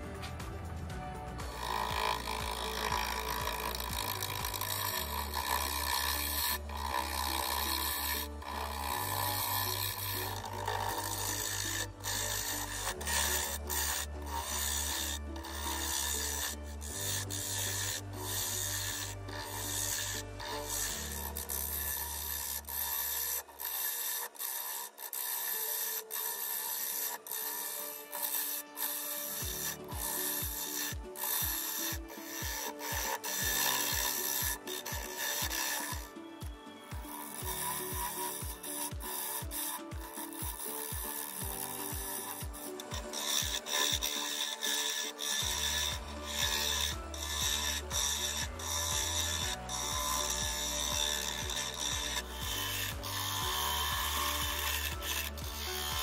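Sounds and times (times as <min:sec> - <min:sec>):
background music with steady bass: 0:00.0 - 0:56.0
gouge scraping wood on lathe: 0:00.0 - 0:56.0.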